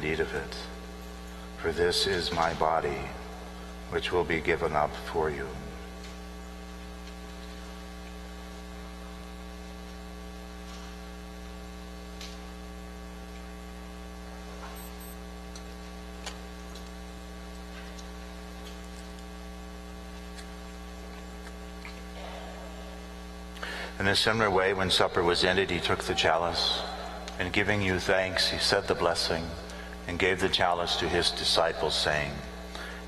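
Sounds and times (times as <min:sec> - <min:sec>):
electrical mains hum: 0:00.0 - 0:33.0.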